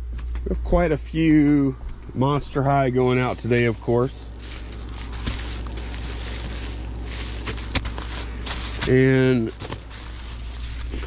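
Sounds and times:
steady background hum: 0.0s - 11.0s
bubble wrap rustling: 2.8s - 11.0s.

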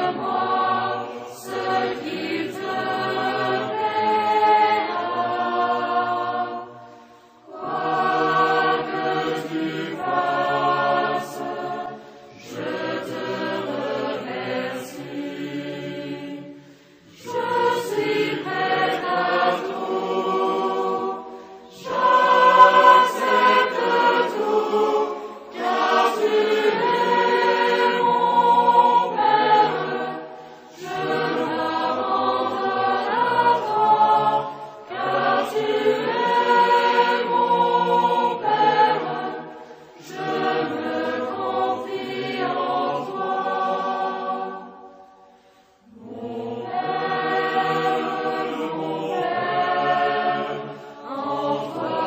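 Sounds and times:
choir singing a hymn: 0.0s - 52.0s.

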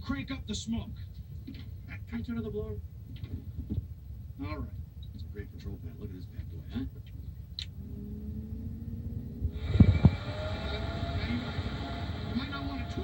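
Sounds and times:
fan motor whine: 0.0s - 13.0s
rushing air: 7.8s - 12.4s.

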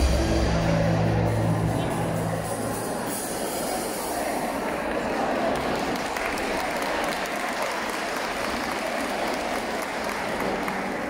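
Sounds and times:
live band low notes: 0.0s - 4.6s
crowd noise in a hall: 0.0s - 11.0s
applause: 4.9s - 11.0s.

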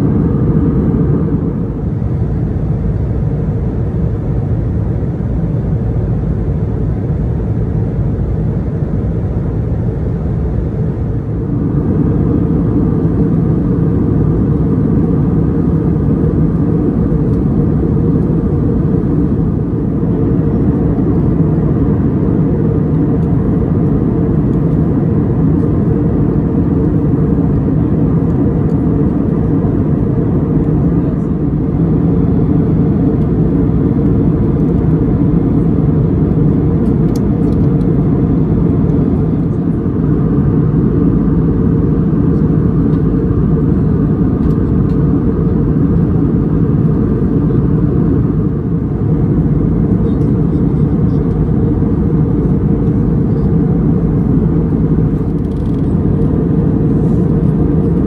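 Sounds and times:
jet airliner cabin drone: 0.0s - 58.0s.

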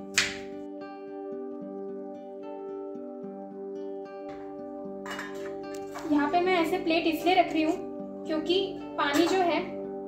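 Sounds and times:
instrumental music with held tones: 0.0s - 10.0s
metal plate clinking in pot: 5.0s - 5.6s.

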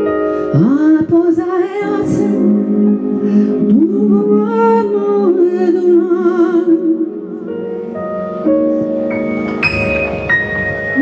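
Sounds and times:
woman singing into a microphone: 0.0s - 7.9s
sustained keyboard chords: 1.3s - 11.0s.

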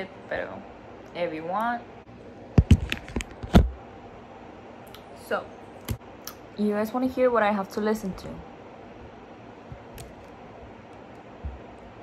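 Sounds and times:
microphone handling clicks and knocks: 2.5s - 3.8s.

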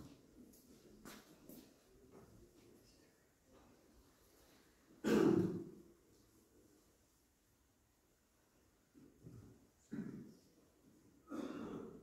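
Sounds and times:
person clearing throat: 5.0s - 5.8s, 9.9s - 10.4s, 11.2s - 12.0s.

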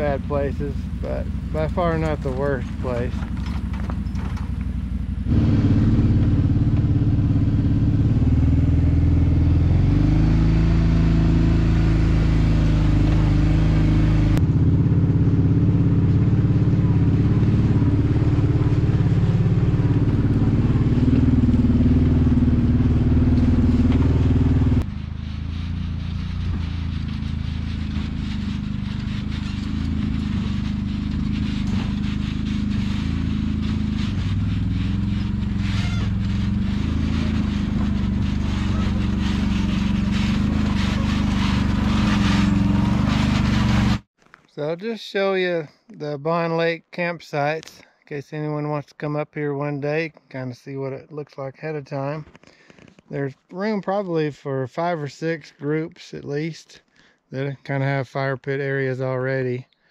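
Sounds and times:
atv engines running: 0.0s - 44.1s.

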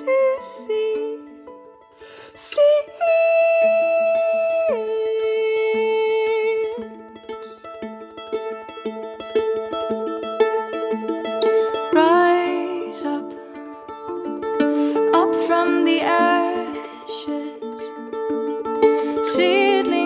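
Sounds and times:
viola plucked pizzicato: 0.0s - 20.0s.

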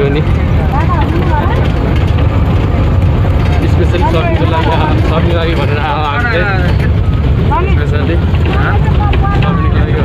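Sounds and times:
bus engine rumble: 0.0s - 10.0s
passengers' voices: 0.0s - 10.0s.

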